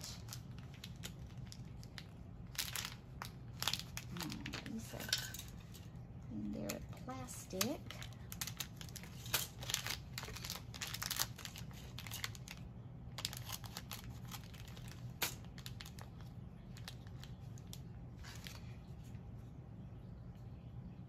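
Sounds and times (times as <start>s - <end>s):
plastic bag crinkling: 0.0s - 5.9s, 6.6s - 18.8s.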